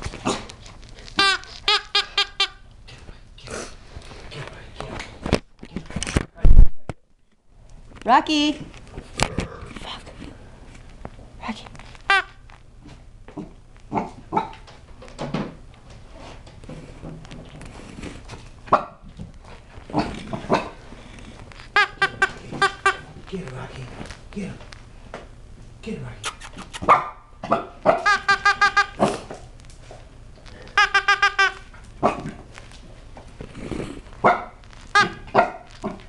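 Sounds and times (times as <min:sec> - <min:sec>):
plush toy yapping: 0:01.2 - 0:02.6, 0:12.1 - 0:12.4, 0:21.8 - 0:23.1, 0:27.9 - 0:29.2, 0:30.8 - 0:32.2, 0:34.9 - 0:35.8
puppy yapping: 0:26.3 - 0:29.2.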